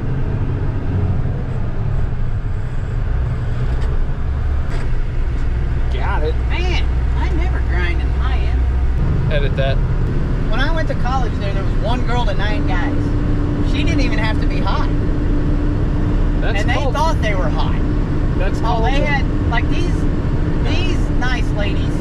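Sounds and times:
truck diesel engine and road noise: 0:00.0 - 0:22.0
person speaking: 0:16.4 - 0:17.8, 0:18.4 - 0:20.0.

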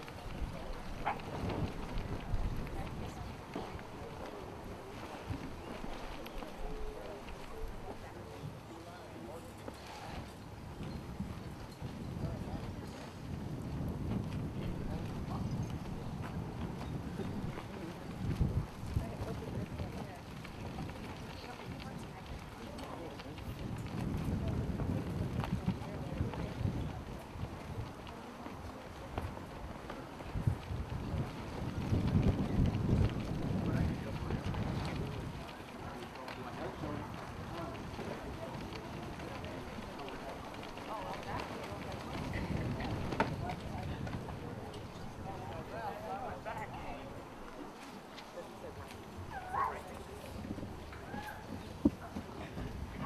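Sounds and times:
murmur of voices: 0:00.0 - 0:53.0
wind buffeting microphone: 0:00.0 - 0:53.0.

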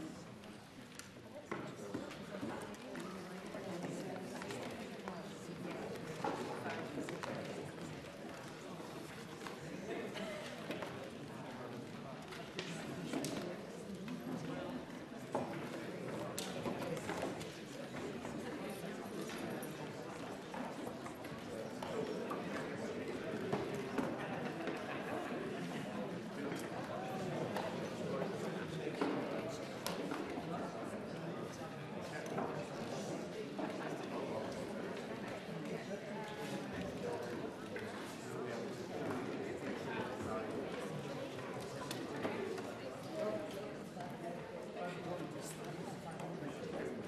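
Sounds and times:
chatter of many people: 0:00.0 - 0:47.0
murmur of voices: 0:00.0 - 0:47.0.

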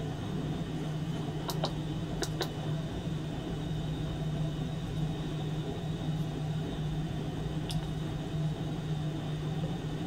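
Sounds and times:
steady low machine hum: 0:00.0 - 0:10.0.

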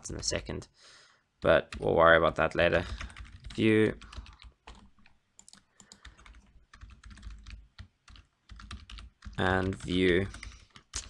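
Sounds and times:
computer keyboard typing: 0:01.4 - 0:11.0.

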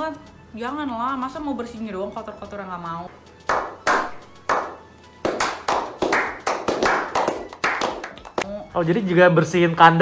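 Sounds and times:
group clapping: 0:03.4 - 0:08.5.

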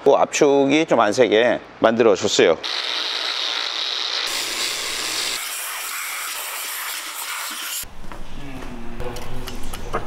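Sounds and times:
angle grinder grinding metal: 0:02.6 - 0:07.8.

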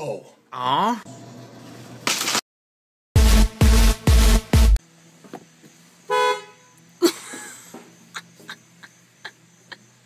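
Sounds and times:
car horn honk: 0:06.1 - 0:06.8.

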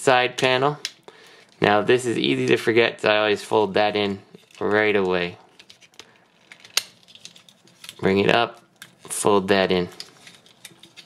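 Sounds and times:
plastic toy parts clicking: 0:05.6 - 0:08.0.

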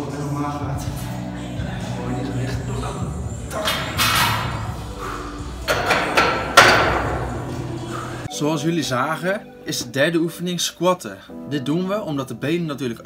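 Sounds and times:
barbell clanking on rack: 0:05.7 - 0:07.3.

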